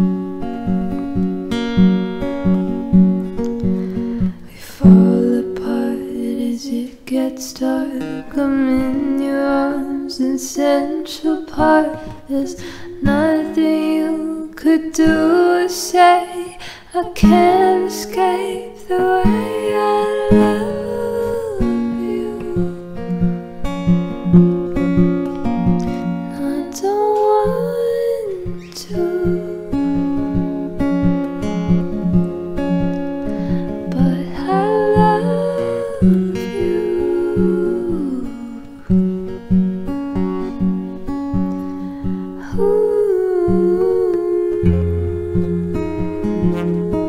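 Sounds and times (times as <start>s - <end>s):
acoustic guitar: 0.0s - 47.0s
woman singing wordlessly: 4.5s - 23.2s, 26.2s - 30.8s, 33.7s - 39.0s, 42.4s - 47.0s.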